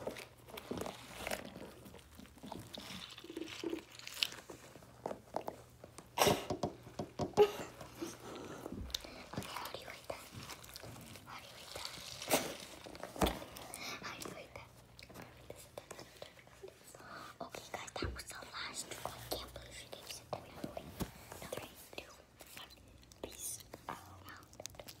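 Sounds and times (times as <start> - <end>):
girls whispering: 9.0 - 10.6, 13.7 - 14.8, 15.5 - 25.0.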